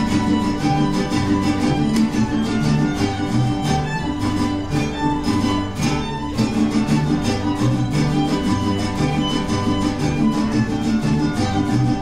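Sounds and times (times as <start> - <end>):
strummed guitars: 0.0 - 12.0
violin melody: 0.0 - 12.0.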